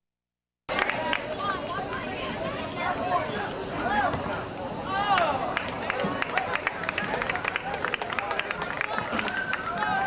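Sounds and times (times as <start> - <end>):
people clapping: 0.7 - 2.3, 5.1 - 10.0
spectators shouting and cheering: 0.7 - 10.0.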